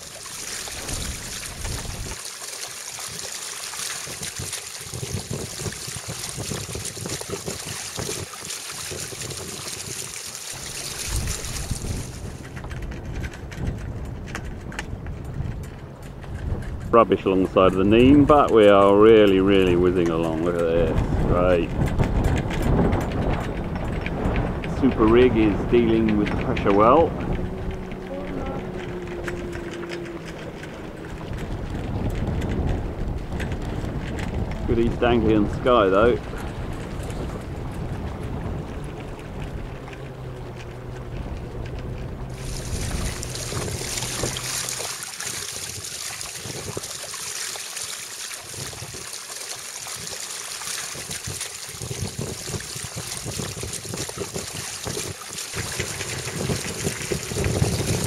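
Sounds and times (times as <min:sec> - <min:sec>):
bow wave slapping: 0:00.0 - 0:58.0
water rushing along boat hull: 0:00.0 - 0:58.0
wind buffeting microphone: 0:00.0 - 0:58.0.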